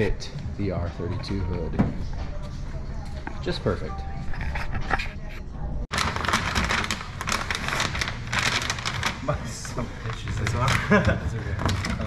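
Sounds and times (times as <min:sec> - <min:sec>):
plastic film crinkling: 0:05.9 - 0:12.0.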